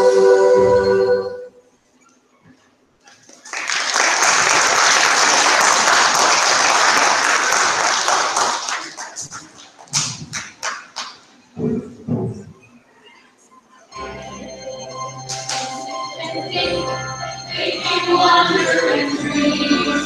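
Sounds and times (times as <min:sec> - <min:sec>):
audience applause: 0:03.2 - 0:11.2.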